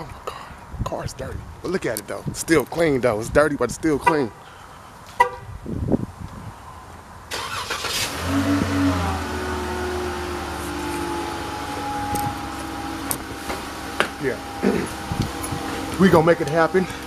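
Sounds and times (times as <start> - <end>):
car engine starting and idling: 7.3 - 17.0.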